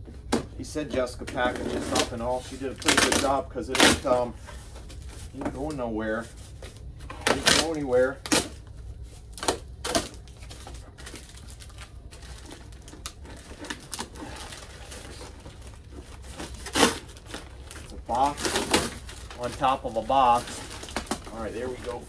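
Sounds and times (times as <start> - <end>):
cardboard box rustling and scraping: 12.2 - 22.0.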